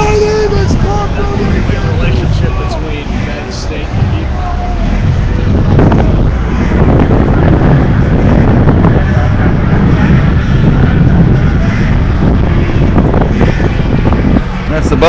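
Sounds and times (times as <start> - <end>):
street noise: 0.0 - 15.0
wind buffeting microphone: 0.0 - 15.0.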